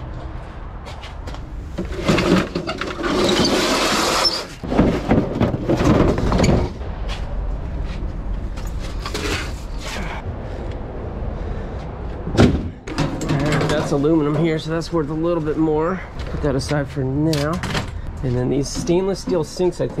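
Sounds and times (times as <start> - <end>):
objects scraping and clattering: 0.9 - 7.3, 7.9 - 10.2, 12.7 - 14.6.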